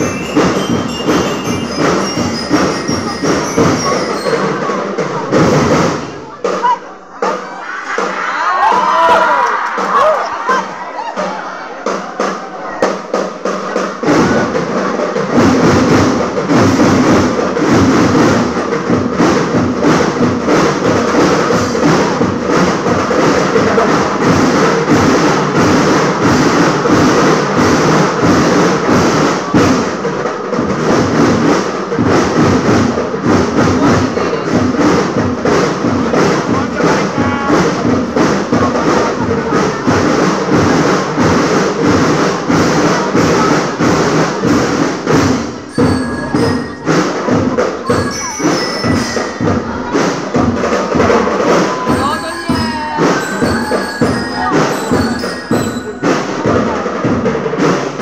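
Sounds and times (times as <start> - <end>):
drums keeping a steady beat: 0.0 - 58.0
marching band playing: 0.0 - 58.0.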